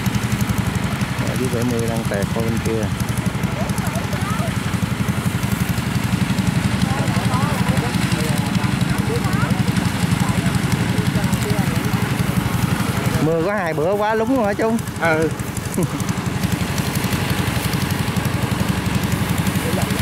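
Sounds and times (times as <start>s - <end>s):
diesel engine chugging: 0.0s - 20.0s
faint voices: 1.2s - 5.4s, 6.2s - 16.6s.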